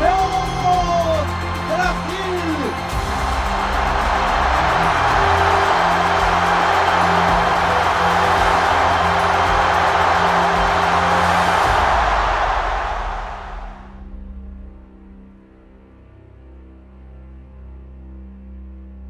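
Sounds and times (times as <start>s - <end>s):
stadium crowd cheering: 0.0s - 14.0s
soundtrack music with low notes: 0.0s - 19.0s.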